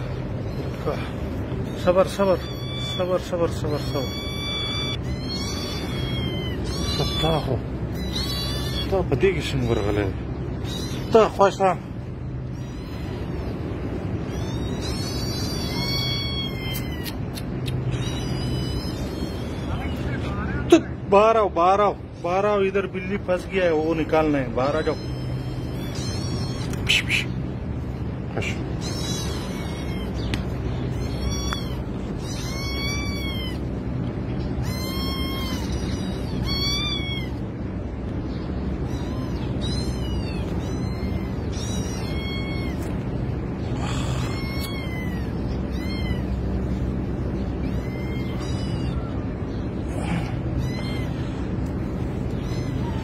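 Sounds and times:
cat meowing: 0:00.0 - 0:20.7, 0:23.9 - 0:53.0
steady low hum: 0:00.0 - 0:53.0.

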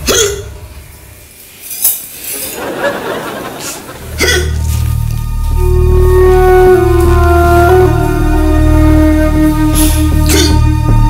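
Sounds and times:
man hiccuping: 0:00.0 - 0:00.5, 0:04.2 - 0:04.6, 0:10.3 - 0:10.6
low drone music: 0:00.0 - 0:01.5, 0:03.4 - 0:11.0
held melody note: 0:04.8 - 0:11.0.

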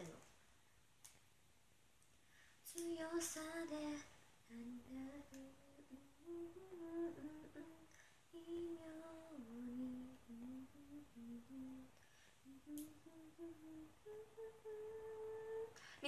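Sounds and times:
woman humming softly: 0:04.5 - 0:15.9.

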